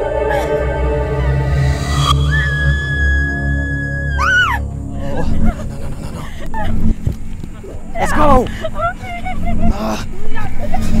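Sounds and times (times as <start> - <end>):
low droning horror music: 0.0 - 11.0
woman screaming: 2.2 - 4.6.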